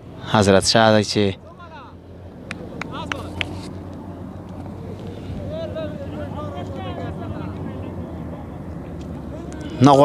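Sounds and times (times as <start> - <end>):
faint voices: 1.2 - 10.0.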